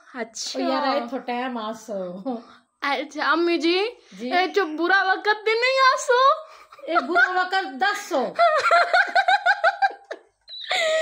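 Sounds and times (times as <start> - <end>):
woman laughing: 6.8 - 7.8, 8.4 - 11.0.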